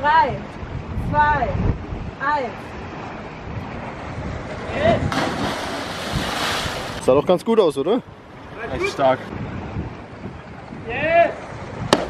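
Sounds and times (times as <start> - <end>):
sea surf: 0.0 - 7.2
wind on microphone: 0.0 - 12.0.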